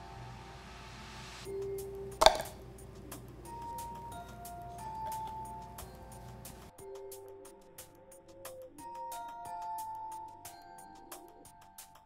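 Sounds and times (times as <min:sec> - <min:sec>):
soft background music: 0:00.0 - 0:12.0
coin clinking into plastic cup: 0:02.2 - 0:02.6.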